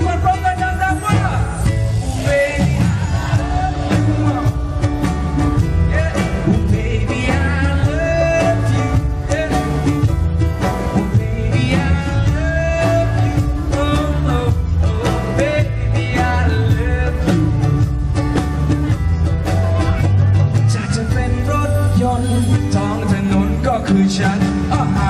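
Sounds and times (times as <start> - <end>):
man singing into a microphone: 0.0 - 4.8, 5.5 - 10.2, 10.8 - 18.0, 20.5 - 25.0
drum kit steady beat: 0.0 - 25.0
electric guitar: 0.0 - 25.0.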